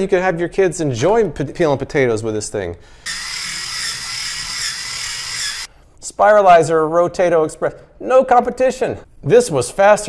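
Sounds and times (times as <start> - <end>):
potato peeler motor whirring: 3.1 - 5.7.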